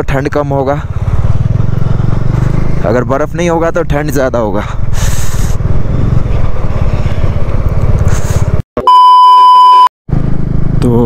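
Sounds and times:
motorcycle engine running: 0.0 - 8.6, 10.1 - 11.0
high bleep tone: 8.8 - 9.9.

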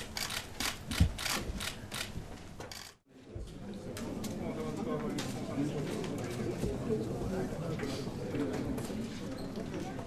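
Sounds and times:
murmur of many people talking: 3.1 - 10.0.

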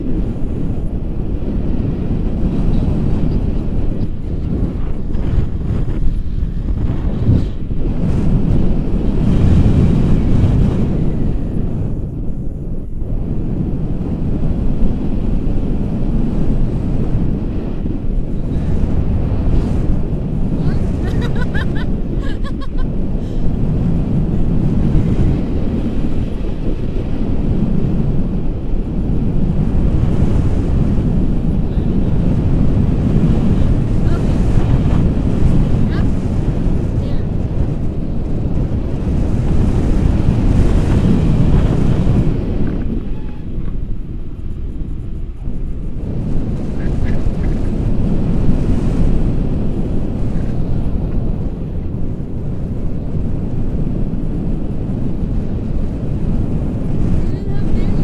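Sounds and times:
wind buffeting microphone: 0.0 - 58.0.

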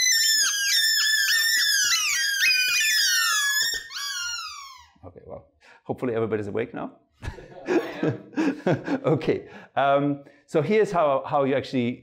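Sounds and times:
rubber balls squeaking: 0.0 - 5.0.

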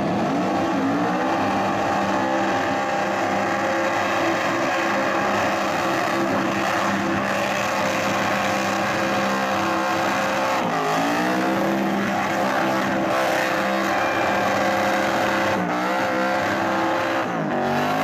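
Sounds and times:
car engine at high revs: 0.0 - 18.0.

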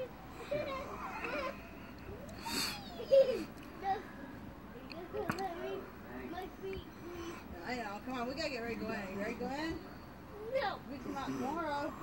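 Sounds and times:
child calling and squealing: 0.0 - 4.1.

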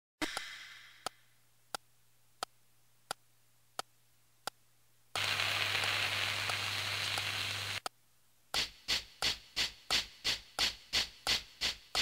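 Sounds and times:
loud steady hiss: 5.2 - 7.9.

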